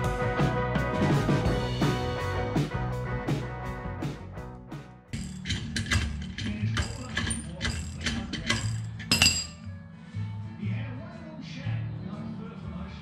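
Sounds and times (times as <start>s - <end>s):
background music: 0.0s - 13.0s
ratchet wrench clicking: 5.2s - 9.5s.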